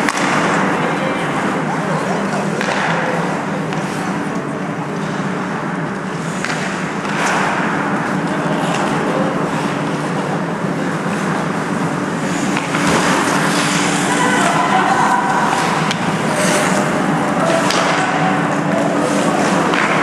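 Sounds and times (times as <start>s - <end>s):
sticks and puck clacking: 0.0s - 1.4s, 2.1s - 5.6s, 6.2s - 20.0s
steady low hum: 0.0s - 20.0s
skates scraping on ice: 12.2s - 20.0s.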